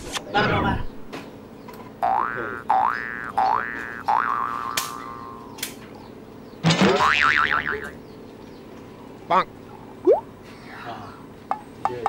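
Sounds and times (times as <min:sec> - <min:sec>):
cartoon rising boings: 0:02.0 - 0:05.4.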